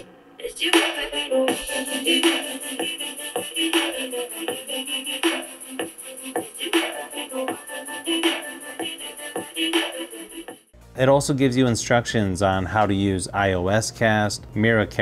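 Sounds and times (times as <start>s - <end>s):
pop song through small speaker: 0.0s - 10.8s.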